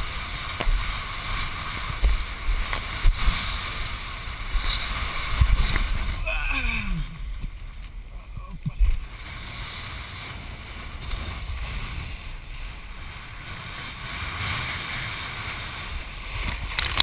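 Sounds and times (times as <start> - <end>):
wind rushing over camera: 0.0 - 17.0.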